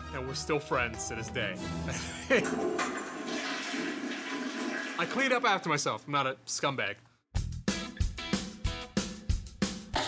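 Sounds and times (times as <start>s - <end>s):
toilet flushing: 2.0s - 5.7s.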